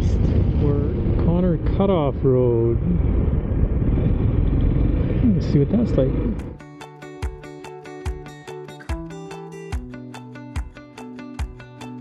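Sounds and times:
wind noise on microphone: 0:00.0 - 0:06.6.

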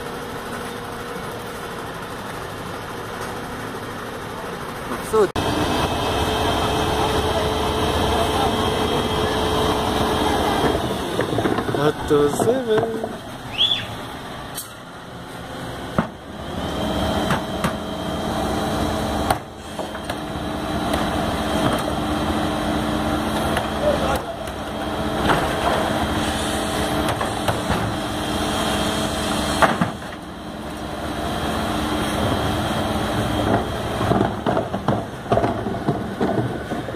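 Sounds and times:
garbage truck hydraulics whining: 0:05.4 - 0:36.9.

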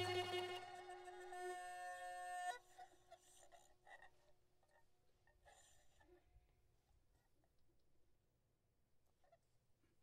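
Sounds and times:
ensemble note: 0:00.0 - 0:00.8.

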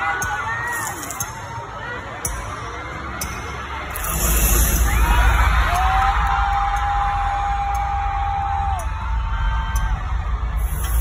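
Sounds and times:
crowd screaming and whooping: 0:00.0 - 0:11.0
concert music with heavy bass: 0:02.4 - 0:11.0.

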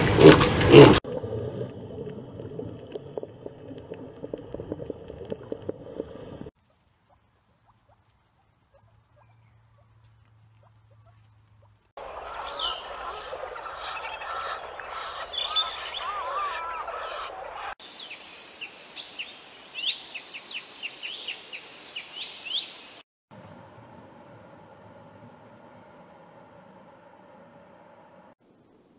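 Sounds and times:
birds chirping and calling: 0:08.7 - 0:19.2.

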